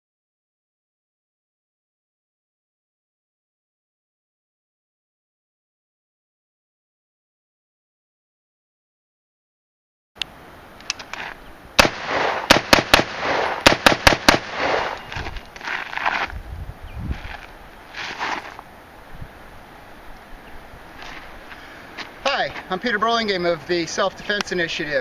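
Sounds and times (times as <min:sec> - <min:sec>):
rifle shots: 0:11.8 - 0:15.0.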